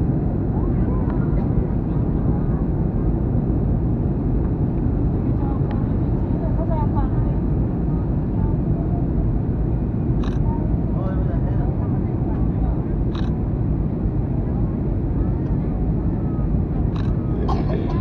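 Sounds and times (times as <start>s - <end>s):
jet airliner cabin rumble: 0.0s - 18.0s
faint passenger voices: 0.1s - 18.0s.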